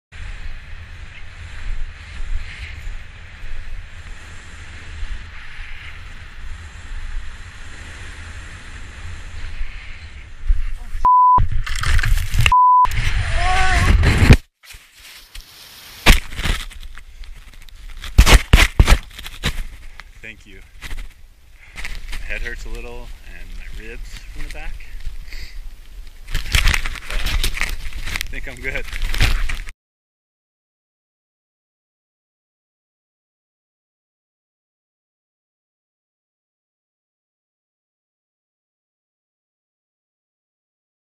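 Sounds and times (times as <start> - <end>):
wind rumbling on microphone: 0.2 - 14.4
tumbling noise: 10.5 - 14.5
short steady beeps: 11.0 - 11.4, 12.5 - 12.9
person yelling: 13.2 - 14.0.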